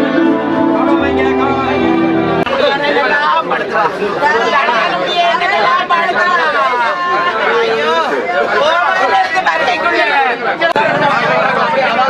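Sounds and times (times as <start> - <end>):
soft string music: 0.0 - 2.5
mourners wailing and crying: 0.0 - 12.0.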